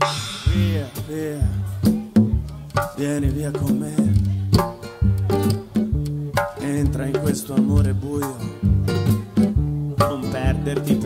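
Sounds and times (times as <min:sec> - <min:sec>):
bass notes: 0:00.0 - 0:11.0
drum hits: 0:00.0 - 0:11.0
strummed acoustic guitar: 0:00.0 - 0:11.0.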